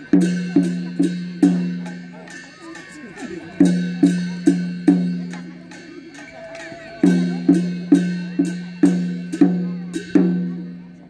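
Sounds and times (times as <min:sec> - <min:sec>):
ringing pitched percussion strokes: 0:00.0 - 0:11.0.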